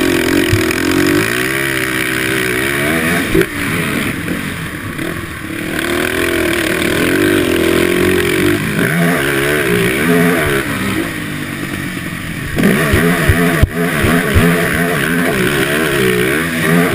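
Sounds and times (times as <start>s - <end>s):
low thumps over dirt bumps: 0.0s - 4.5s, 5.9s - 16.9s
quad engine revving: 0.0s - 16.9s.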